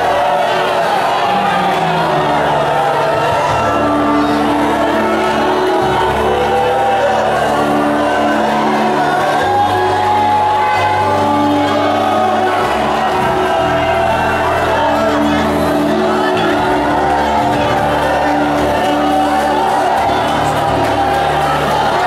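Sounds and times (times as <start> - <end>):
congregation calling out: 0.0 - 22.0
live gospel worship music: 0.0 - 22.0
singing voices: 0.0 - 22.0.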